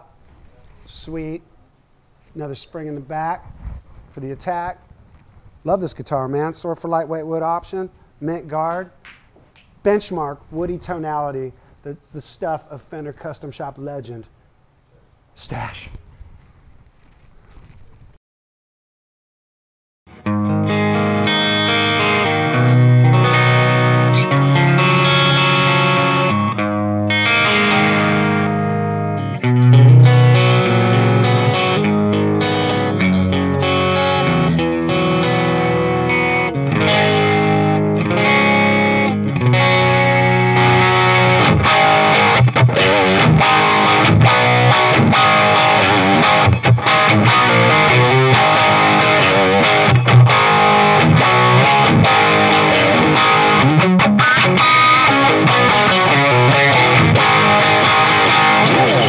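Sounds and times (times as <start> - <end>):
distorted electric guitar chords: 20.1 - 59.0.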